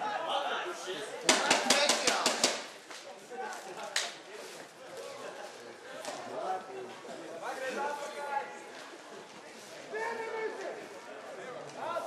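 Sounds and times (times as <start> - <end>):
people's voices: 0.0 - 12.0
sharp knocks: 1.3 - 2.7.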